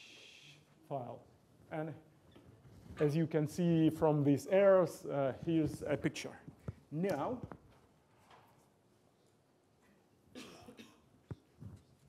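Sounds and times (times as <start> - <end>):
short cough: 10.3 - 11.1.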